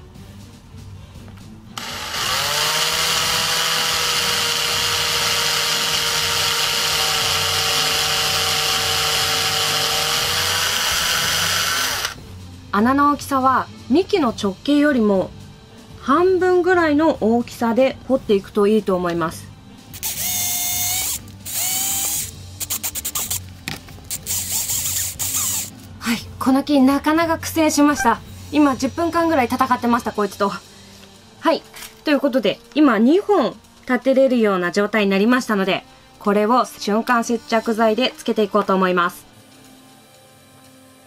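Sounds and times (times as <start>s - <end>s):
electric drill whining: 1.8s - 12.2s, 20.0s - 23.4s, 24.1s - 25.7s.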